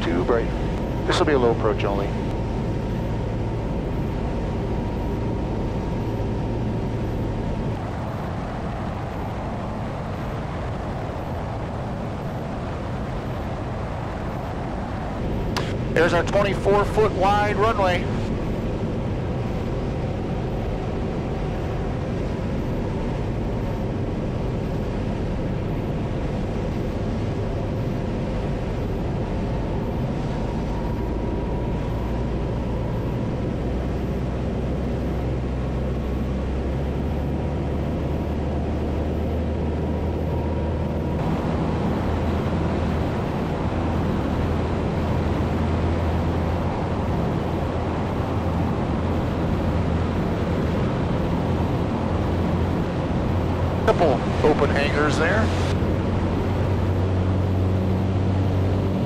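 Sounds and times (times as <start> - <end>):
propeller plane engine running: 0.0 - 59.0.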